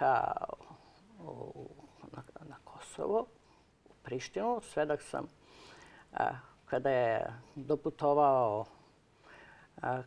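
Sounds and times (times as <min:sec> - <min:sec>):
woman speaking: 0:00.0 - 0:03.4, 0:04.0 - 0:05.4, 0:06.1 - 0:08.8, 0:09.8 - 0:10.0.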